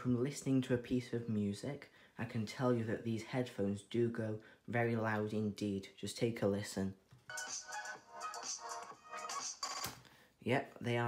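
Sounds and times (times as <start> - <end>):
tinny music from headphones: 7.2 - 10.0.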